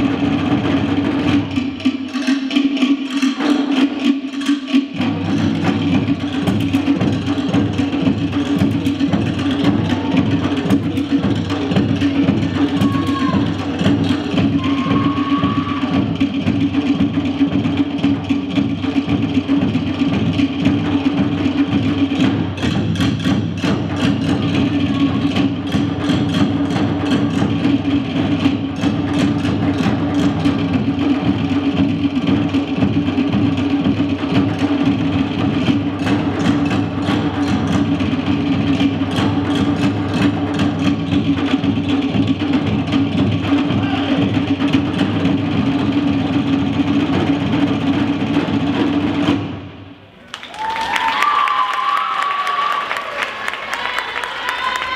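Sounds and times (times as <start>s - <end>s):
rising whoop: 12.6s - 13.5s, 14.6s - 16.0s, 50.3s - 54.9s
audience applauding and cheering: 50.2s - 54.9s.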